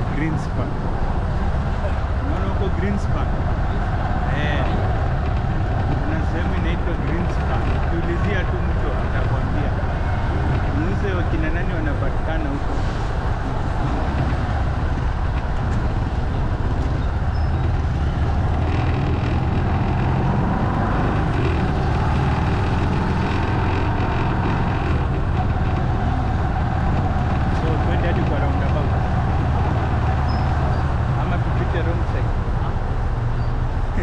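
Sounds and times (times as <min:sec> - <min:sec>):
motorcycle engine hum: 0:00.0 - 0:34.0
wind and road noise: 0:00.0 - 0:34.0.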